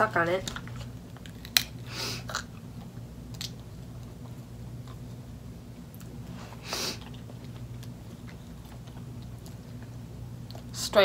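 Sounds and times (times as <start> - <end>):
low steady hum: 0.0 - 11.0
hard candy crunching: 0.4 - 4.1.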